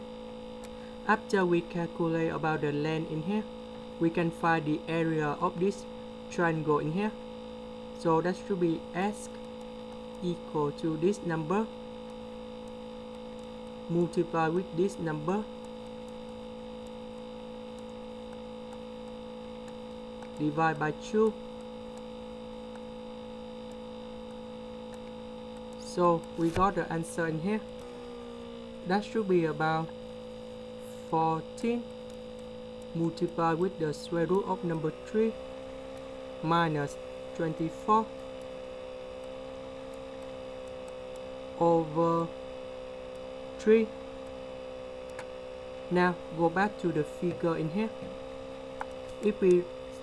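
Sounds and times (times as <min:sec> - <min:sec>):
steady electrical hum: 0:00.0 - 0:50.0.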